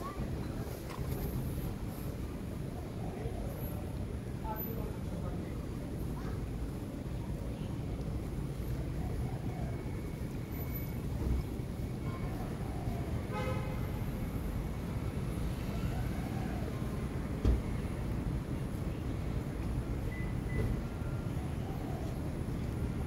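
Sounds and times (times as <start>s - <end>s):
thump: 17.4s - 17.7s.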